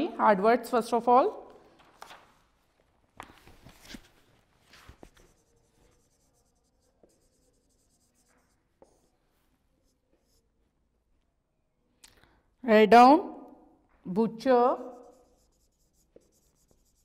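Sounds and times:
marker scratching on whiteboard: 5.0 - 10.6, 14.7 - 17.0.

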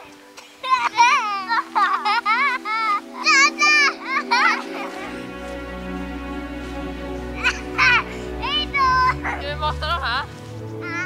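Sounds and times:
background music: 0.0 - 11.0
children shouting and squealing: 0.4 - 5.3, 7.4 - 9.4.

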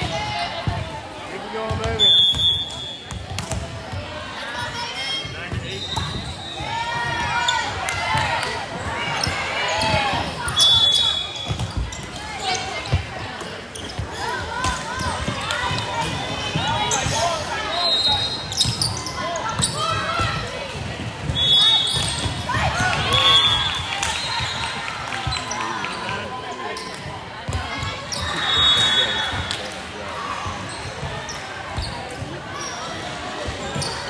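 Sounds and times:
voices calling and cheering: 0.0 - 34.0
volleyball hits: 1.6 - 4.1, 18.4 - 25.5.

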